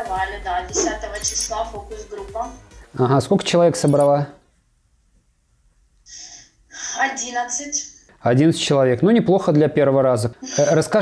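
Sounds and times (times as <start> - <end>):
woman speaking: 0.0 - 2.6, 6.8 - 8.1.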